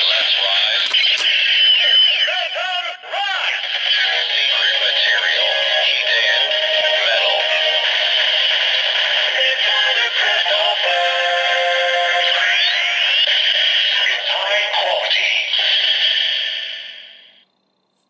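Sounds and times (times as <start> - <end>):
synthesized voice announcing: 0.0 - 16.2
electronic music: 3.6 - 10.8.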